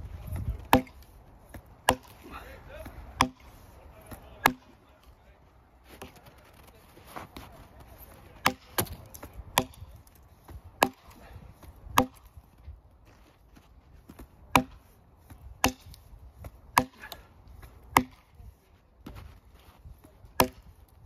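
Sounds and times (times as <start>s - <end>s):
axe chopping log: 0.3s - 4.8s, 8.4s - 12.4s, 14.1s - 18.4s, 20.2s - 20.9s.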